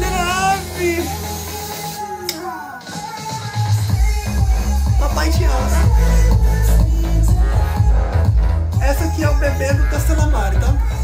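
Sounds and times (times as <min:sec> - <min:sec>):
music with heavy bass: 0:00.0 - 0:11.0.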